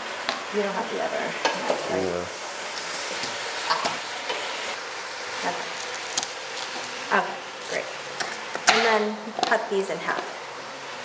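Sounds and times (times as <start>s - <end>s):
chicken sizzling in a pan: 0.0s - 11.0s.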